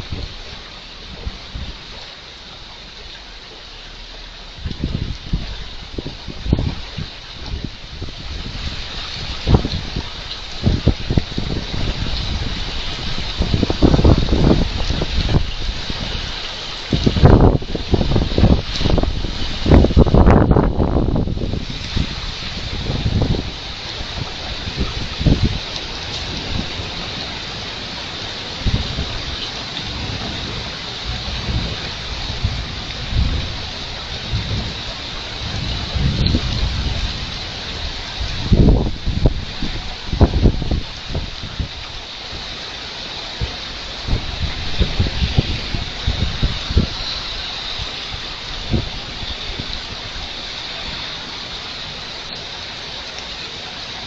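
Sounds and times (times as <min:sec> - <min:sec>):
heavy rain hissing: 0:00.0 - 0:54.0
low rumbling surges: 0:00.0 - 0:54.0.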